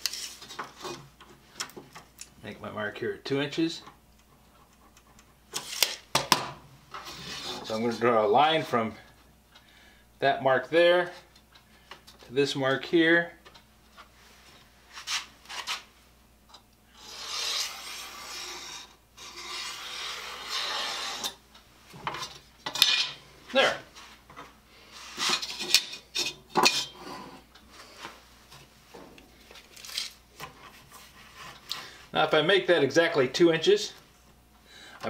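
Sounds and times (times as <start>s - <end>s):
pencil scratching on wood: 17.0s - 21.4s.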